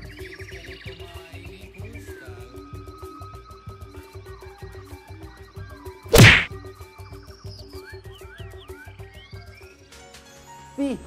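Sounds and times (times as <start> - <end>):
impact with low boom: 6.2 - 6.5.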